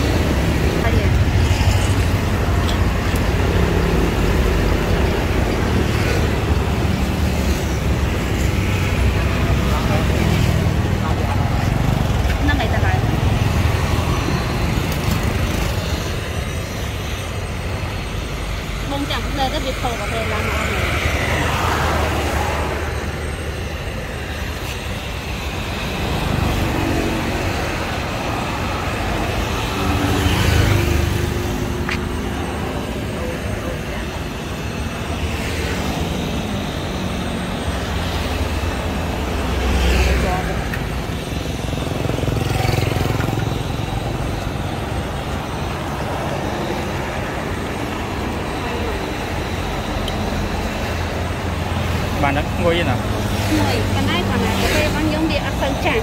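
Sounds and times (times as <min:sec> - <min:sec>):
road traffic rumble: 0:00.0 - 0:56.0.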